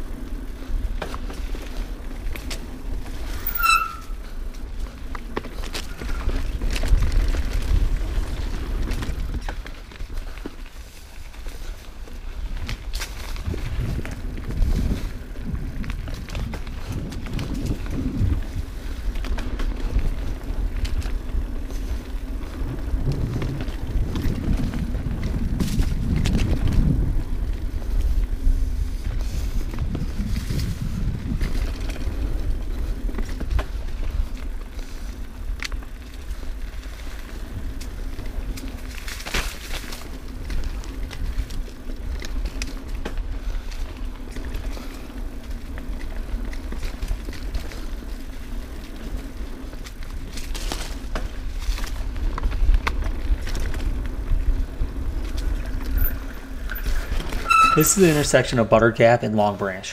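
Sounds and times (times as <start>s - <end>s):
bike rattles and clicks: 0.0s - 59.9s
tyres rolling on dirt: 0.0s - 59.9s
wind on microphone: 12.2s - 38.9s.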